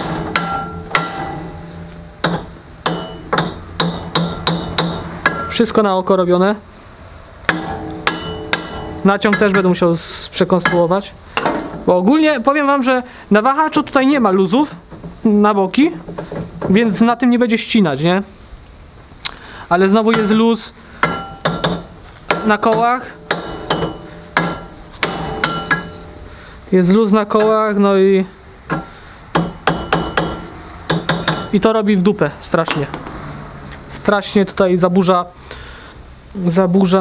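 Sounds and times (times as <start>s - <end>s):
hammer striking metal: 0.0s - 5.8s, 7.5s - 9.7s, 10.6s - 11.9s, 20.1s - 26.3s, 28.7s - 31.6s.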